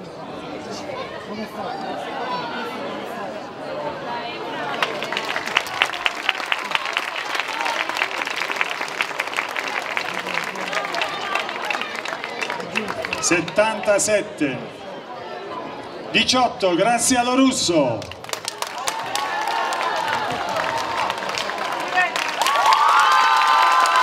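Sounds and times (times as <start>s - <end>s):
crowd voices and calls: 0.0s - 24.0s
audience applause: 4.5s - 13.8s, 18.0s - 24.0s.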